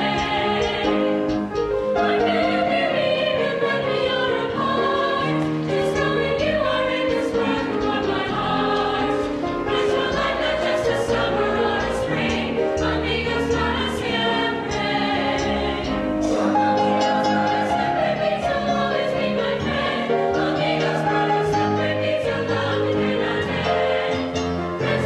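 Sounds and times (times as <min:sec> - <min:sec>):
mixed chorus singing in parts: 0:00.0 - 0:25.0.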